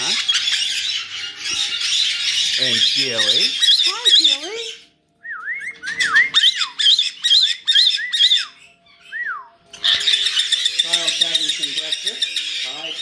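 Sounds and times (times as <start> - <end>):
harsh parrot squawking: 0.0 - 4.8, 5.8 - 8.7, 9.8 - 13.0.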